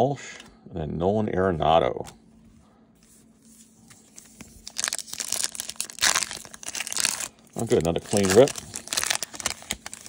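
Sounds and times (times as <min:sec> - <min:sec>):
foil wrapper crinkling and tearing: 0:04.6 - 0:10.0.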